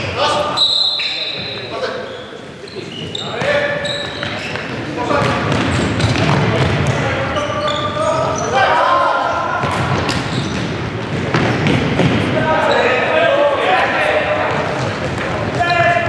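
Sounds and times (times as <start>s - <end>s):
players shouting: 7.3s - 10.2s.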